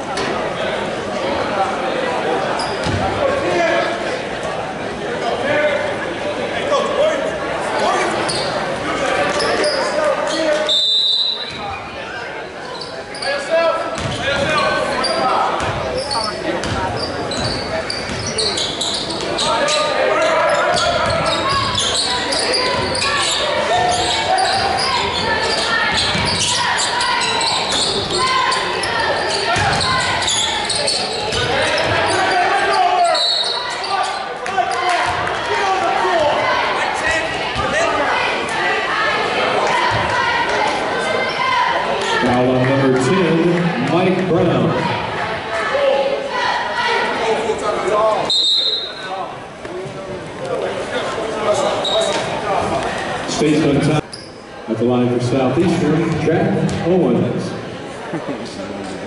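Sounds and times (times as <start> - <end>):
basketball bouncing on wooden floor: 14.0 - 14.2.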